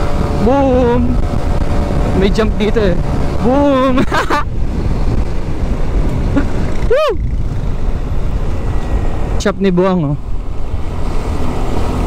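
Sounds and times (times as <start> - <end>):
wind on microphone: 0.0 - 12.0
person whooping: 6.8 - 7.2.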